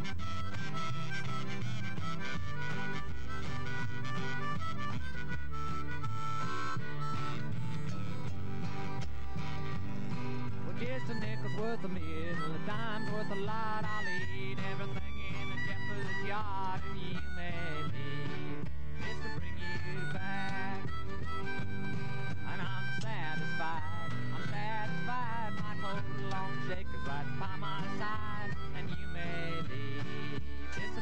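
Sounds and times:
harmonica lead: 0:00.0 - 0:31.0
strummed acoustic guitar: 0:00.0 - 0:31.0.

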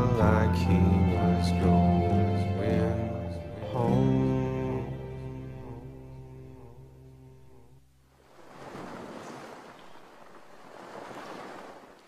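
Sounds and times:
song held notes: 0:00.0 - 0:07.6
soft rushing wash: 0:08.0 - 0:12.0.

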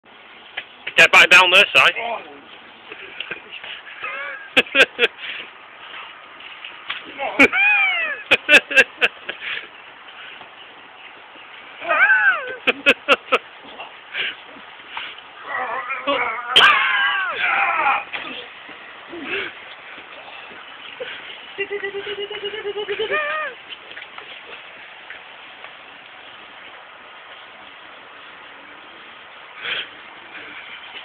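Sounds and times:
outdoor background noise: 0:00.0 - 0:31.0
person's high wailing cry: 0:07.4 - 0:08.3, 0:11.8 - 0:12.6, 0:15.5 - 0:18.1, 0:23.0 - 0:23.6.

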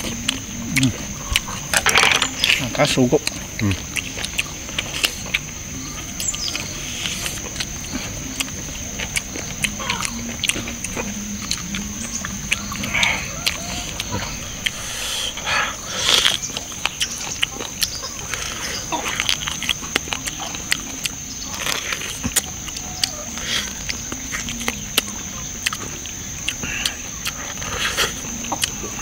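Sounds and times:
lip smacks: 0:00.0 - 0:29.0
man chewing meat: 0:00.0 - 0:29.0.

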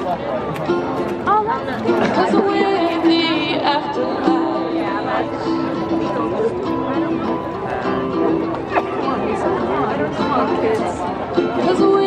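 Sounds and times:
audience chatter: 0:00.0 - 0:12.0
ukulele playing: 0:00.0 - 0:12.0.

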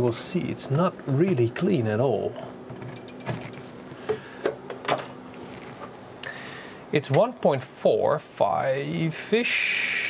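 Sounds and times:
faint steady hum: 0:00.0 - 0:10.0
equipment clicks and knocks: 0:02.7 - 0:05.1.

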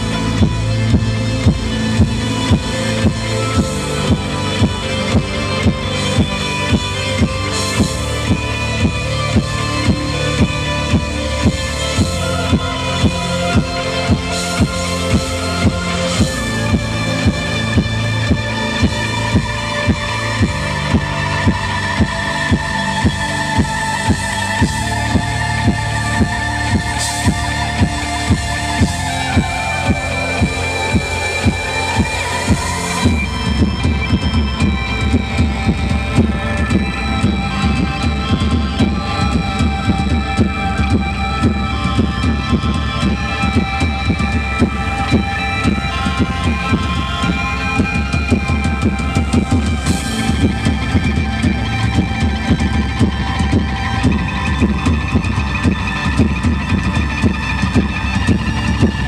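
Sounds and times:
live band with electric guitar: 0:00.0 - 0:59.0.

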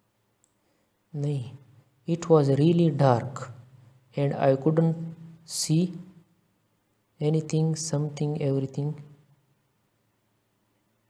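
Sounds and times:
faint click: 0:00.4 - 0:00.6.

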